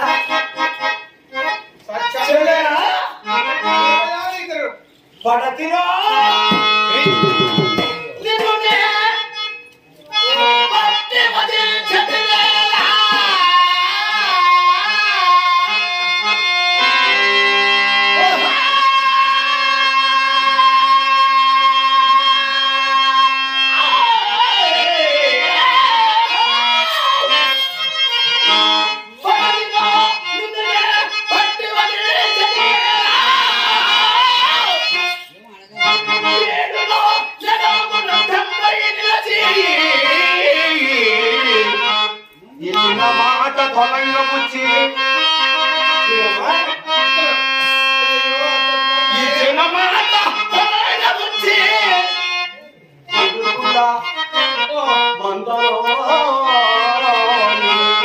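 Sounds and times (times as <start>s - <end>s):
harmonium: 0.0s - 58.0s
person singing ornamented verse: 10.1s - 17.0s, 29.1s - 58.0s.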